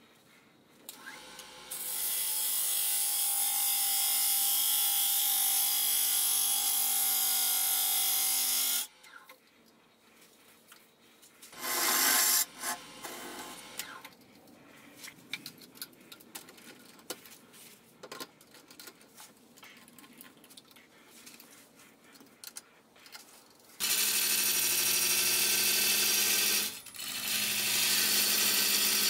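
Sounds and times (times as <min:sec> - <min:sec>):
lathe motor hum: 0:11.6 - 0:14.0.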